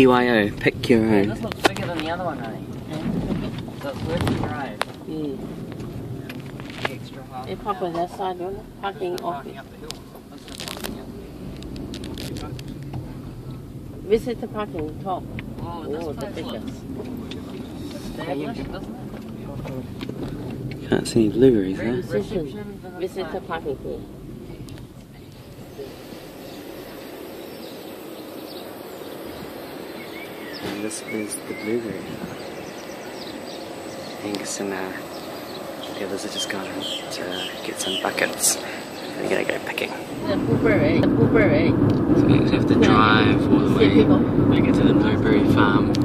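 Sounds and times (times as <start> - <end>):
car engine and tyre hum: 0.0 - 46.0
outdoor background noise: 0.0 - 46.0
brief clicks and crackles: 9.9 - 11.0
faint bird chirps: 25.3 - 40.1.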